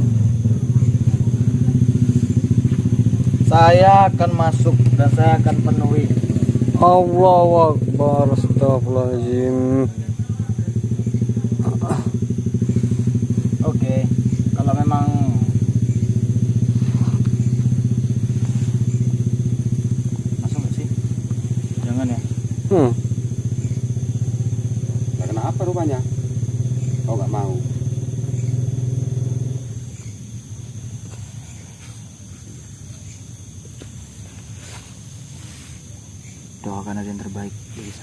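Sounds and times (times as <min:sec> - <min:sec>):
murmured voices: 0:00.0 - 0:18.2
low pulsing engine drone: 0:00.0 - 0:38.0.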